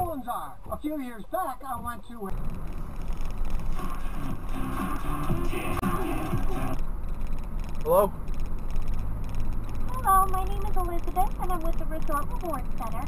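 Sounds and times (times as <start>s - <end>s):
engine and road hum: 2.3s - 13.0s
car radio music and voice: 3.8s - 6.8s, 9.9s - 13.0s.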